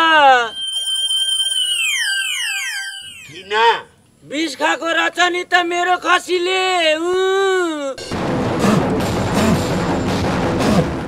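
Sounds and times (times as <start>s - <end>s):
comic warbling electronic effect: 0.0s - 3.9s.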